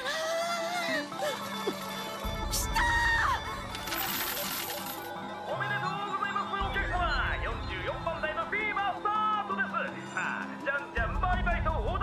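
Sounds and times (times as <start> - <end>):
background music: 0.0 - 12.0
metal balls clattering: 3.7 - 5.2.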